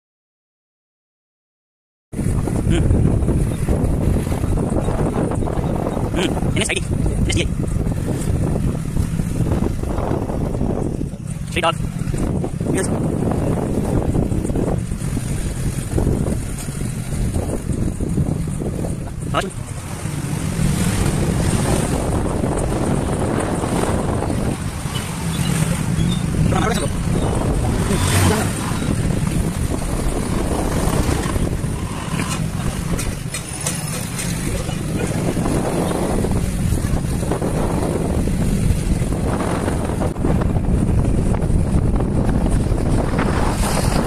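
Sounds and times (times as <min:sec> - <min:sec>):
passing street traffic: 0:02.1 - 0:44.0
wind buffeting microphone: 0:02.1 - 0:44.0
motorbike engine rumble: 0:02.2 - 0:44.0.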